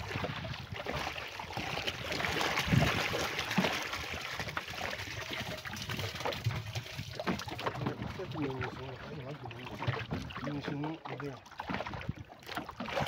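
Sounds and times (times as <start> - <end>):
water pouring and splashing: 0.0 - 13.0.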